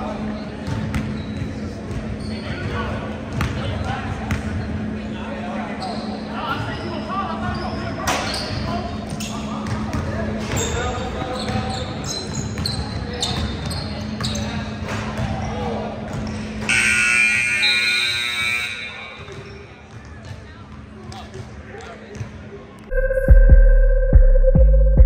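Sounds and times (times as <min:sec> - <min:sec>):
scoreboard horn: 0:16.7 - 0:19.0.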